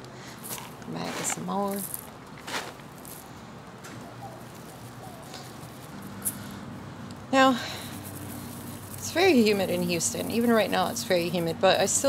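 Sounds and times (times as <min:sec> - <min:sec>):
sand rustling through a sieve: 0:00.4 - 0:03.3, 0:04.1 - 0:06.4, 0:07.9 - 0:11.3.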